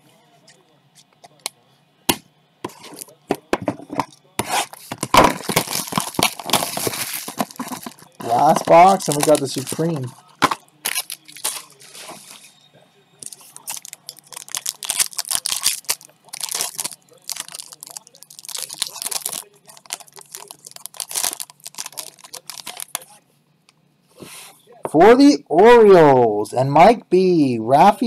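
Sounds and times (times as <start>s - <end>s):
foil wrapper tearing and crinkling: 4.4s - 12.4s, 13.2s - 23.1s.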